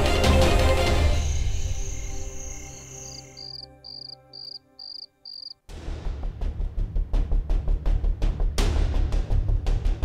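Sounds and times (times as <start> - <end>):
background music: 0.0 - 10.0
crickets chirping: 1.2 - 5.6.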